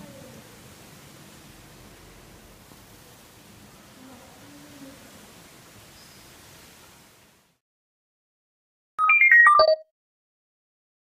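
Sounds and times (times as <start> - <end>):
electronic chime jingle: 9.0 - 9.8.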